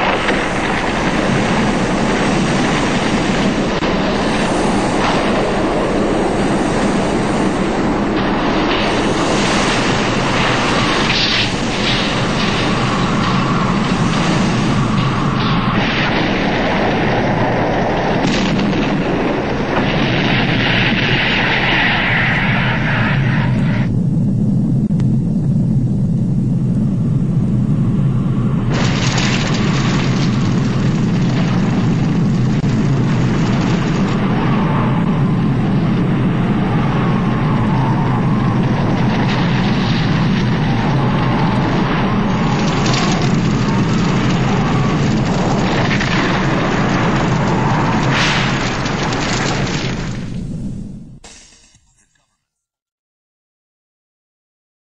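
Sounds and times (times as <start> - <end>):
deep rumbling blast roar: 0.0 - 51.2.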